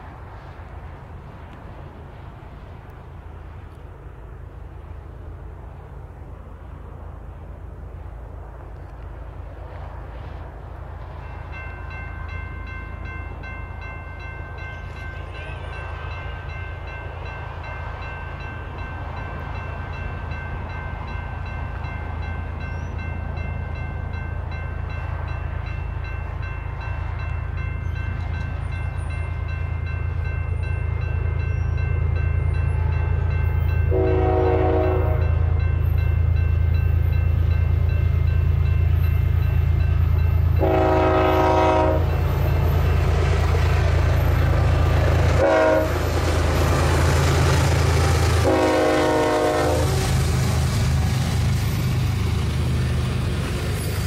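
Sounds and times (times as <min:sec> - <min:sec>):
diesel locomotive engine rumble: 0:00.0 - 0:54.0
train horn blasts: 0:32.7 - 0:35.6, 0:40.4 - 0:42.6, 0:45.2 - 0:50.2.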